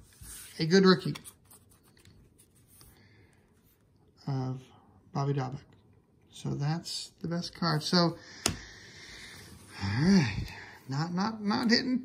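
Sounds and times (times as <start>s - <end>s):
man talking: 0.5s - 1.3s, 4.2s - 5.7s, 6.3s - 8.3s, 9.7s - 12.0s.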